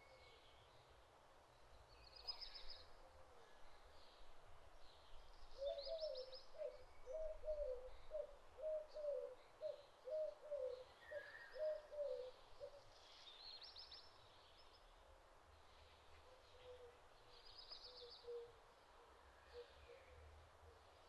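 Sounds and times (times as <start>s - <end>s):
faint outdoor background noise: 0.0s - 21.0s
bird cooing: 5.6s - 12.9s, 16.3s - 17.0s, 17.8s - 18.6s, 19.4s - 20.3s.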